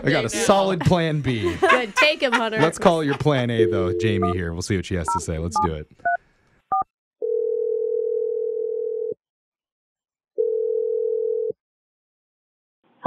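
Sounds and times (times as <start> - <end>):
telephone ringback tone: 7.2 - 9.2.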